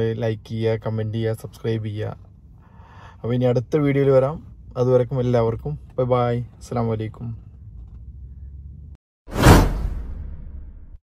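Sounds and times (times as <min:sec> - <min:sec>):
whoosh sound effect: 0:09.3 - 0:11.0.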